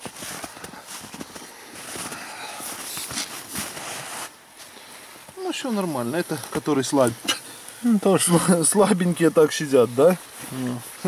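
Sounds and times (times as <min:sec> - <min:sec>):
footsteps crunching in snow: 0:00.0 - 0:07.1.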